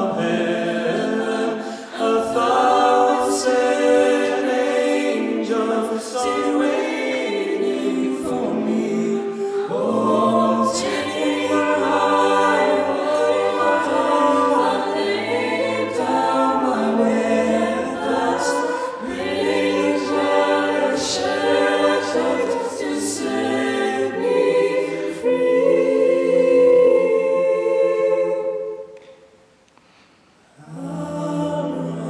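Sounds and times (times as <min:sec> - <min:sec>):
a cappella group singing ballad: 0:00.0 - 0:29.4, 0:30.5 - 0:32.0.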